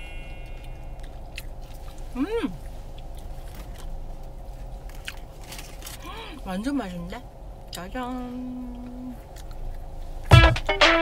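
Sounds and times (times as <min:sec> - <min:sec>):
crunchy food chewing: 0:00.3 - 0:06.1, 0:08.8 - 0:10.3.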